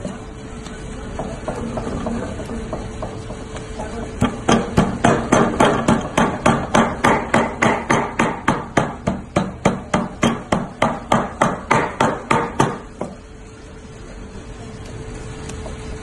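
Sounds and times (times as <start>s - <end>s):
cleaver chopping meat on wood: 4.2s - 13.1s.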